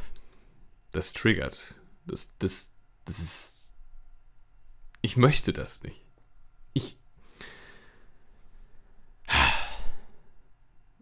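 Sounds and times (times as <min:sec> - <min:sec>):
man breathing in: 0:07.2 - 0:08.3
man sighing heavily: 0:09.3 - 0:10.2.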